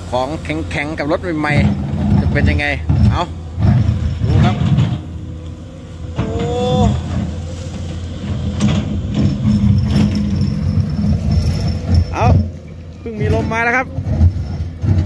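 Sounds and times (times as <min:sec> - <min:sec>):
excavator diesel engine running: 0:00.0 - 0:15.0.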